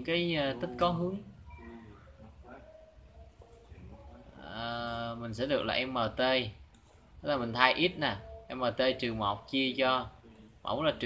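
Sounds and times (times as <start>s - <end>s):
faint murmur of distant voices: 0.6s - 5.2s.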